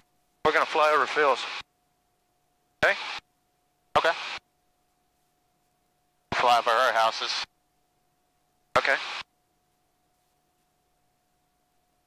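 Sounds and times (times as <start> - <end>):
faint steady tone: 0.0 - 12.0
person speaking over headset: 0.5 - 1.6, 2.8 - 3.2, 6.3 - 7.5, 8.8 - 9.2.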